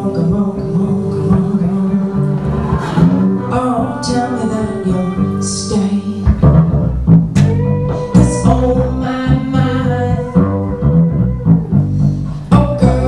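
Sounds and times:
electric bass guitar: 0.0s - 13.0s
lap steel guitar: 0.0s - 13.0s.

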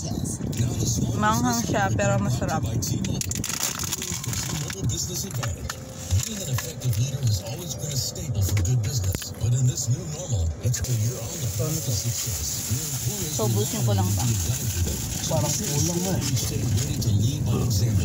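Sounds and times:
car rumble inside cabin: 0.0s - 18.0s
faint low voices: 0.0s - 18.0s.

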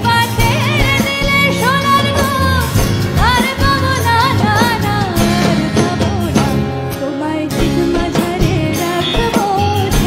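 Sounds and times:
acoustic guitar: 0.0s - 10.0s
drum kit: 0.0s - 10.0s
woman singing into a microphone: 0.0s - 10.0s.

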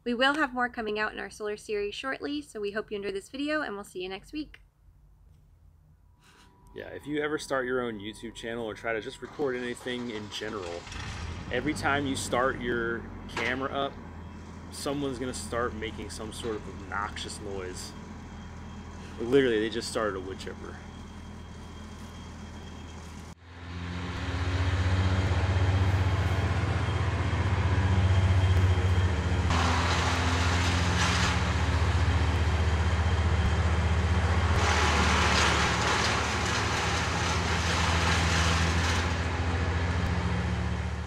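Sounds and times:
wood chipper engine drone: 6.2s - 41.0s
harsh rasping chipping noise: 29.5s - 40.7s.

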